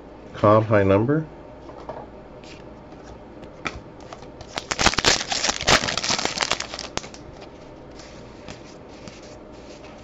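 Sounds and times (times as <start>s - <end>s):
wrapper crinkling being torn: 4.4s - 7.2s.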